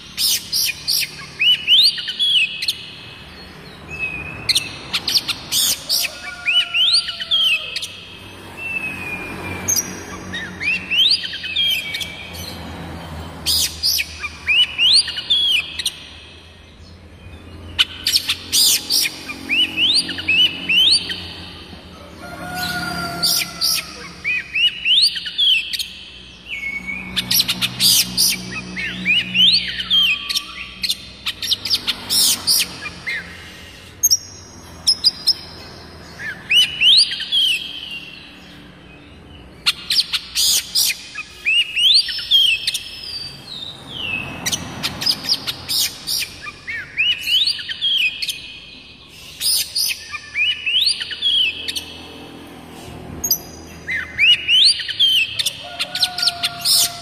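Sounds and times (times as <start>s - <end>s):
bird whistling song: 23.4s - 33.4s.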